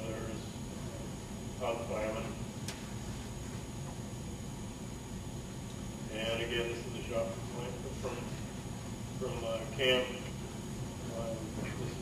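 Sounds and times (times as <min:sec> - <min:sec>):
faint high whine: 0:00.0 - 0:12.0
room hum and hiss: 0:00.0 - 0:12.0.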